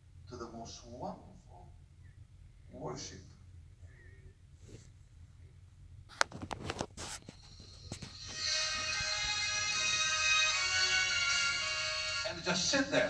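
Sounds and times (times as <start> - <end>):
worship music from a phone: 7.3 - 13.0.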